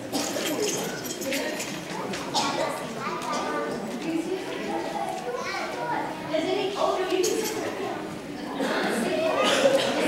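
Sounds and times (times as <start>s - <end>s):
children chattering and calling out: 0.0s - 10.0s.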